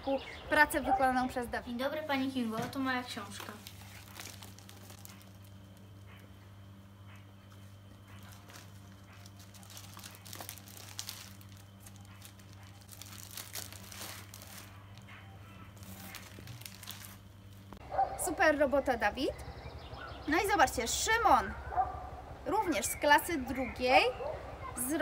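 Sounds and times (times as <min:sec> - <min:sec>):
plastic sleeves crinkling: 0:02.7 - 0:06.2, 0:07.6 - 0:17.8
sharp crackles: 0:03.1 - 0:06.2, 0:08.1 - 0:17.8.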